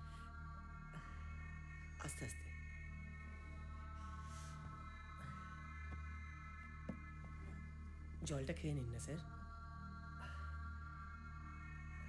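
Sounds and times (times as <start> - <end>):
ambient drone score: 0.0 - 12.0.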